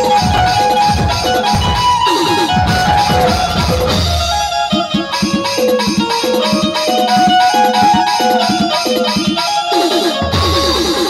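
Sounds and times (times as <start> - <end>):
steady low beat: 0.0 - 7.4
keyed zither melody: 0.0 - 11.0.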